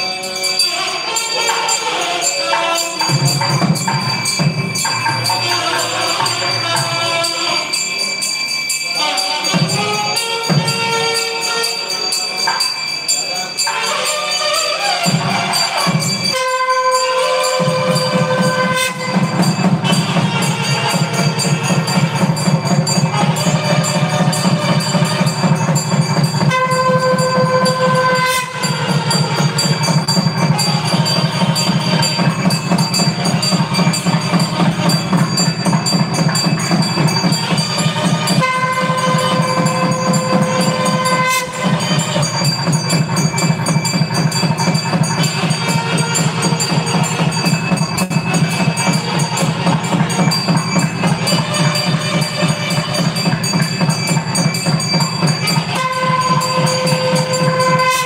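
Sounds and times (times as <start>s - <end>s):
fast drum rhythm: 3.0s - 7.1s, 15.0s - 58.0s
reed pipes playing: 8.8s - 58.0s.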